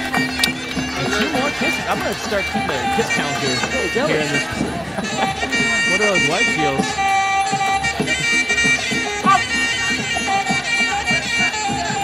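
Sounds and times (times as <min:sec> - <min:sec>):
hand drums beating: 0:00.0 - 0:12.0
reedy oboe: 0:00.0 - 0:12.0.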